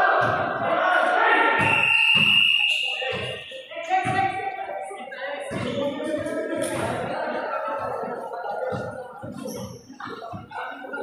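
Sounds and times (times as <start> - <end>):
players' voices: 0.0 - 11.0
referee's whistle blast: 1.6 - 3.7.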